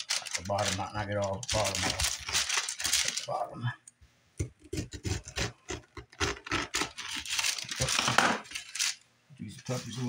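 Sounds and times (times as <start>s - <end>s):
knife cutting pineapple rind: 4.6s - 7.3s.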